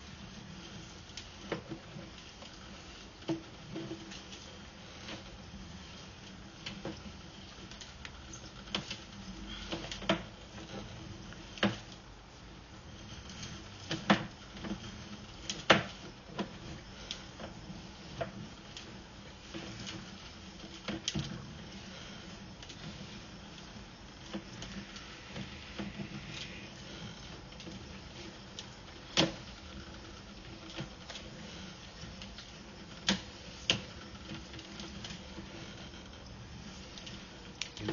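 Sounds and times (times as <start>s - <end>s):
steady low hum: 0.0s - 37.9s.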